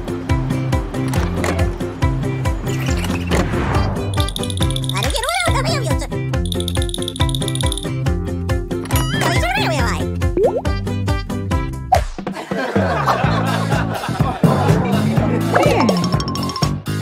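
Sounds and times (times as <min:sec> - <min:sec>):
upbeat background music: 0:00.0 - 0:17.0
rattling shaker: 0:04.1 - 0:05.3, 0:06.4 - 0:07.9.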